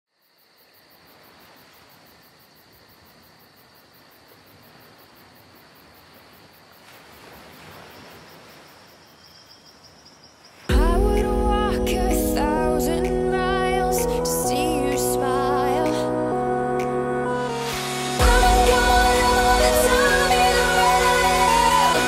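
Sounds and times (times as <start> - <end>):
insect chirring: 0.2 - 10.7.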